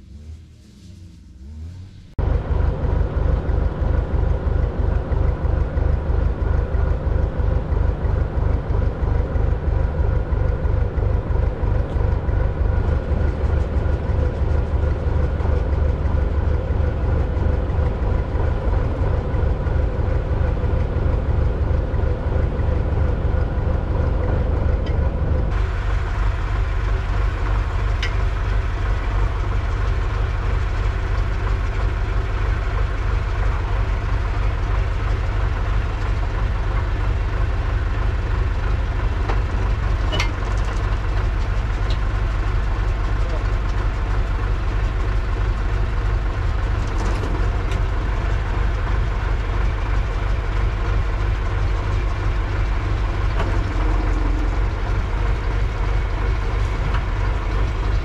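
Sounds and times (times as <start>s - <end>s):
excavator diesel engine running: 2.2s - 58.0s.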